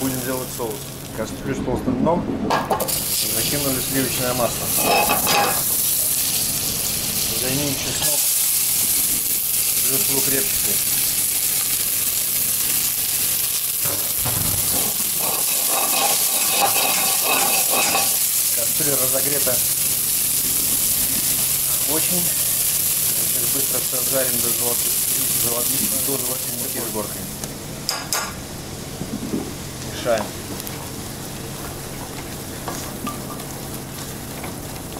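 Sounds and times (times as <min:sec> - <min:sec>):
onion and garlic sizzling in butter: 0:00.0 - 0:01.2, 0:02.8 - 0:34.9.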